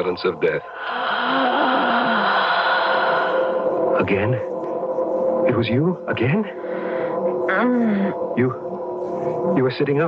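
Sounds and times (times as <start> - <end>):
faint wavering low tone: 0.0 - 10.0.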